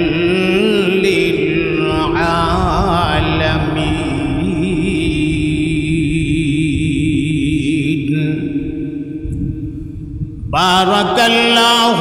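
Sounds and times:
man chanting recitation: 0.0 - 9.2, 10.5 - 12.0
soft steady hum: 0.0 - 11.4.

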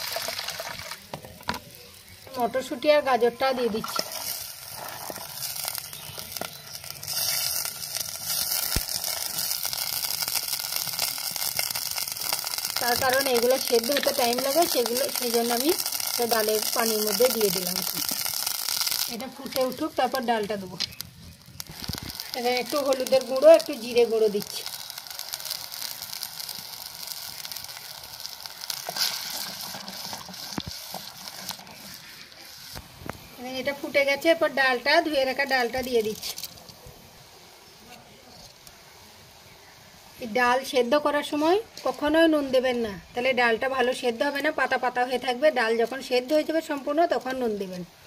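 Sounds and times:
vegetables sizzling in hot oil: 0.0 - 48.0.

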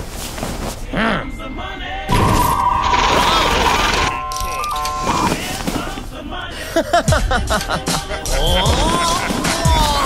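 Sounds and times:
background music: 0.9 - 10.0
steady electronic beep: 1.1 - 5.4
stepped beeps: 1.2 - 5.6.

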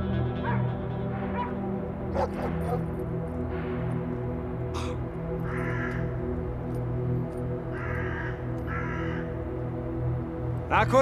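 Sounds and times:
background music with low drone: 0.0 - 11.0
crows cawing: 2.2 - 2.9, 4.8 - 6.6, 7.5 - 10.2.

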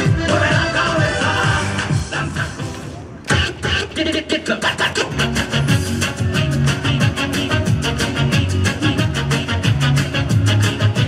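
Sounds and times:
dance music over loudspeakers: 0.0 - 11.0.

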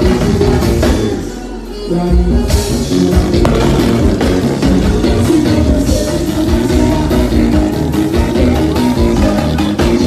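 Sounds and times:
live band playing dance music: 0.0 - 10.0.

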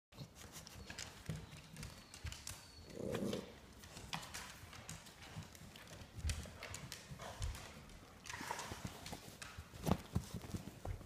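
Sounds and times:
dogs moving on a couch: 0.2 - 11.0.

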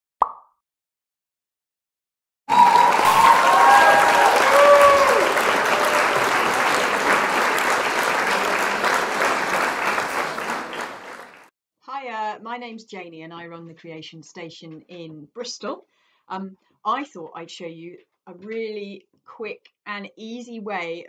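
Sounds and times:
crowd applause and cheering: 2.5 - 11.5.

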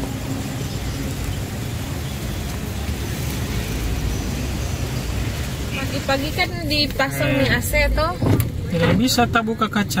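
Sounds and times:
road traffic rumble: 0.0 - 10.0.

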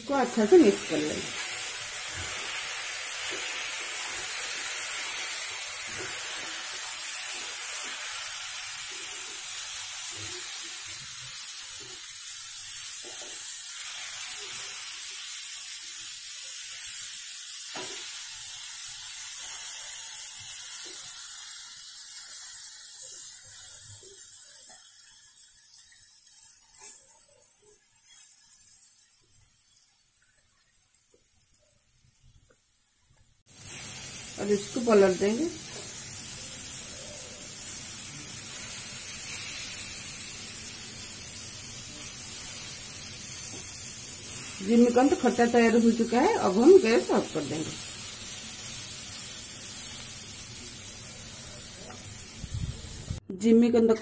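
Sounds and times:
food sizzling in oil: 0.0 - 53.2.

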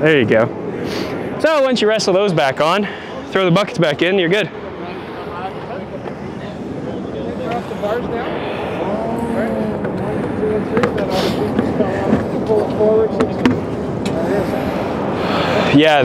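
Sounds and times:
men talking: 0.0 - 16.0
steady outdoor noise: 0.0 - 16.0.

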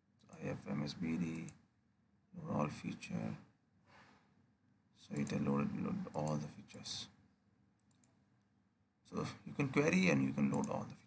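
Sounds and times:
faint computer mouse clicks: 5.1 - 5.4, 7.8 - 8.2, 10.4 - 11.0.

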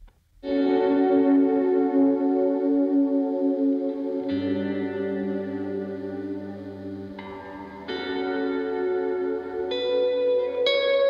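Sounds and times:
guitar chord with echo: 0.4 - 11.0.

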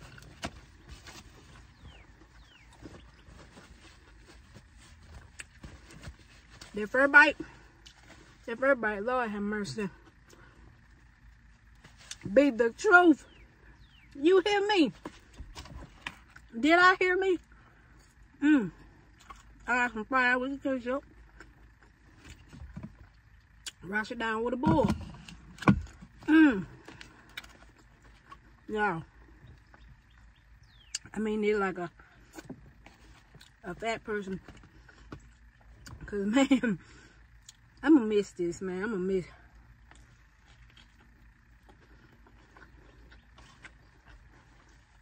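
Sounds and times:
low steady hum: 0.0 - 45.0
chewing gummy candy: 18.8 - 19.7, 25.0 - 31.1, 32.1 - 33.7, 39.5 - 45.0
person chewing with mouth clicks: 19.1 - 19.7, 39.8 - 45.0.

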